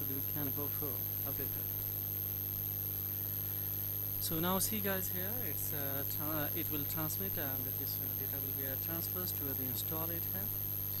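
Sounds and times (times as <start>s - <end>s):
faint hiss: 0.0s - 11.0s
low electrical hum: 0.0s - 11.0s
thin high whine: 0.0s - 11.0s.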